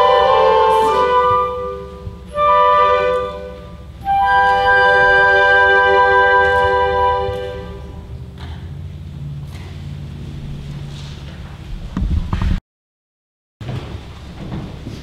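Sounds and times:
choir and orchestra chords: 0:00.0 - 0:08.6
low hall hum: 0:00.0 - 0:12.6, 0:13.6 - 0:15.0.

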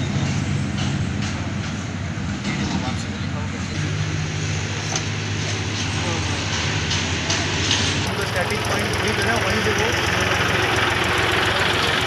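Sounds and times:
faint voices talking: 0:02.4 - 0:12.0
vehicle engine idling: 0:03.1 - 0:12.0.

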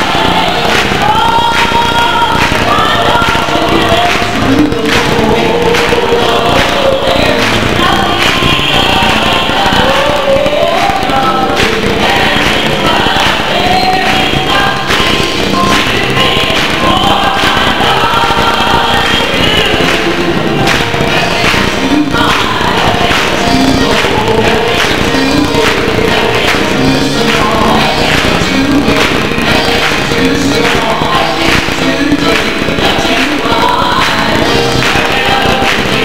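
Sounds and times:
choir singing: 0:00.0 - 0:36.0
hand clapping: 0:00.0 - 0:36.0.

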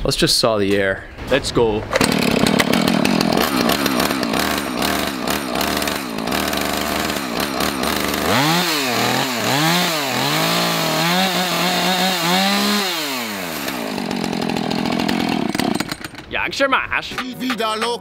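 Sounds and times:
chainsaw idling and revving: 0:01.9 - 0:16.3.

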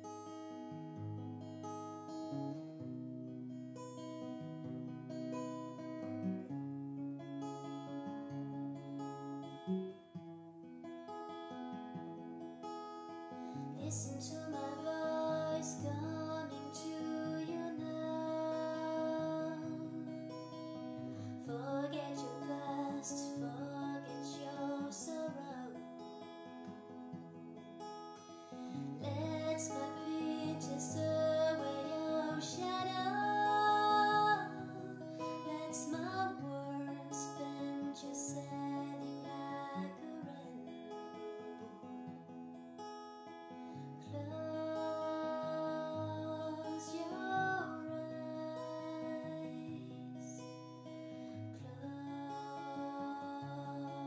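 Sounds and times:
acoustic guitar chords: 0:00.0 - 0:54.0
woman singing: 0:13.7 - 0:20.6, 0:21.2 - 0:26.1, 0:28.8 - 0:40.8, 0:44.0 - 0:50.5, 0:51.5 - 0:54.0.

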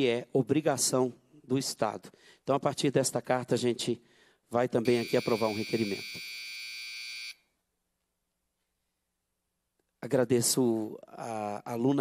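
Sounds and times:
electronic buzzer tone: 0:04.9 - 0:07.4.

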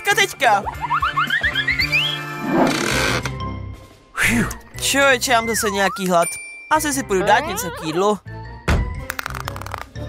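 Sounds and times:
comedy background music: 0:00.0 - 0:10.0.

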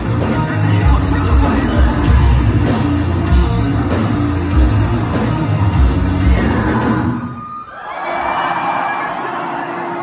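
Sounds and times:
live rock band playing: 0:00.0 - 0:07.5
crowd cheering and shouting: 0:00.0 - 0:10.0.

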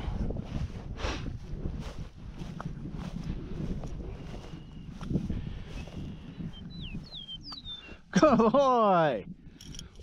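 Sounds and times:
footsteps through dry grass: 0:00.0 - 0:08.0
wind buffeting microphone: 0:00.0 - 0:10.0.

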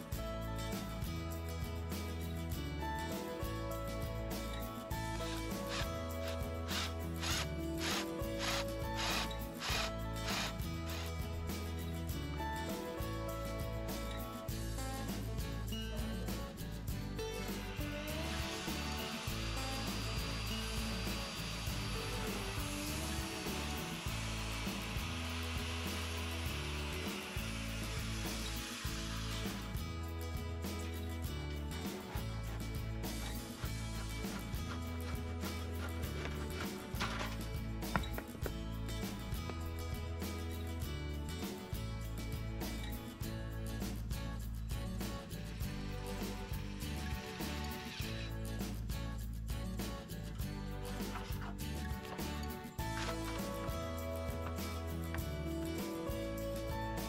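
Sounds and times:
background guitar music: 0:00.0 - 0:57.0
power saw cutting wood: 0:05.1 - 0:11.4, 0:17.6 - 0:30.0, 0:32.0 - 0:38.3, 0:46.5 - 0:48.2, 0:52.1 - 0:53.8
cordless drill boring into wood: 0:05.2 - 0:11.2, 0:18.2 - 0:29.8.

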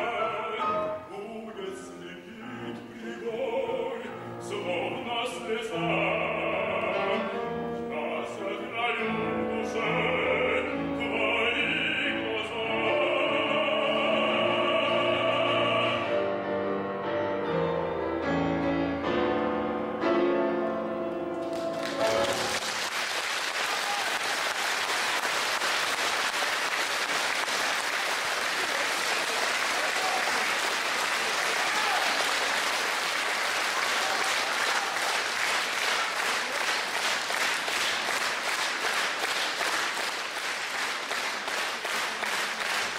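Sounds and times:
piano and voice chord: 0:00.0 - 0:22.6
audience applauding: 0:21.4 - 0:42.9.

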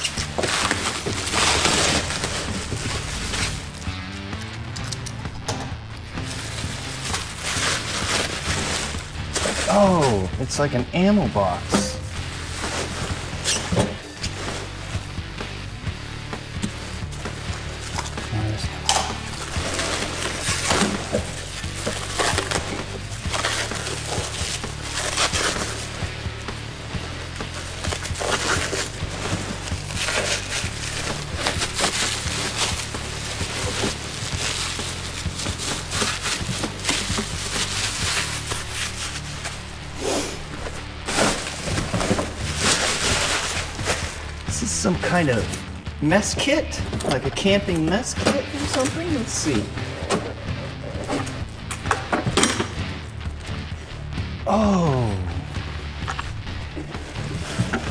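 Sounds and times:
plastic wrapping crinkling: 0:00.0 - 0:15.6, 0:16.2 - 0:45.7
background music: 0:00.0 - 0:57.9.

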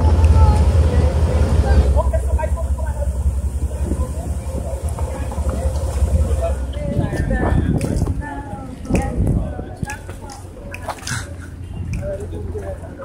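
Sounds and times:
people talking faintly: 0:00.0 - 0:13.0
steady low rumble: 0:00.0 - 0:13.0.

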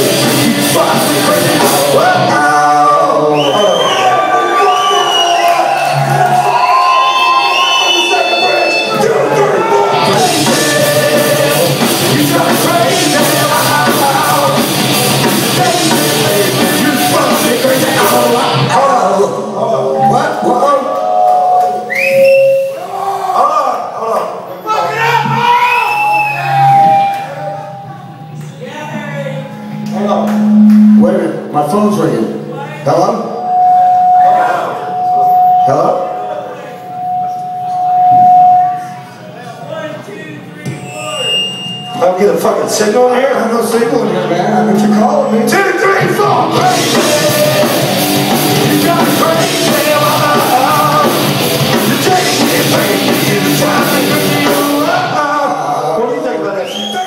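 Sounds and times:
live rock band playing: 0:00.0 - 0:02.8, 0:05.7 - 0:19.0, 0:29.5 - 0:31.5, 0:43.6 - 0:55.4
drums: 0:00.0 - 0:23.0, 0:24.9 - 0:28.4, 0:43.6 - 0:55.6
high sliding wavering notes: 0:26.1 - 0:39.2, 0:43.2 - 0:52.0
held low note: 0:26.6 - 0:32.6, 0:43.5 - 0:46.8
held vocal notes: 0:43.4 - 0:56.0.

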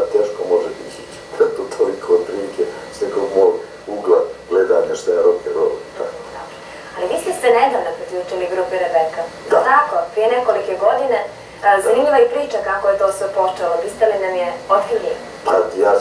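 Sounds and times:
man talking: 0:00.0 - 0:06.4, 0:15.5 - 0:16.0
woman talking: 0:06.3 - 0:15.3.

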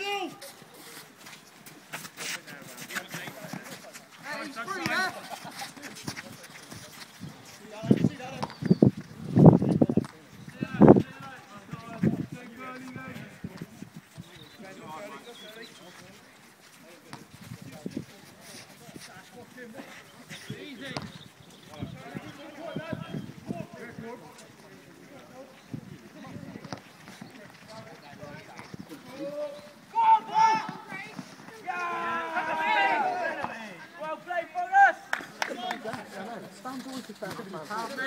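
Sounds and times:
footballers calling out: 0:01.9 - 0:08.7, 0:18.0 - 0:38.0
faint shouts of players: 0:29.1 - 0:35.9.

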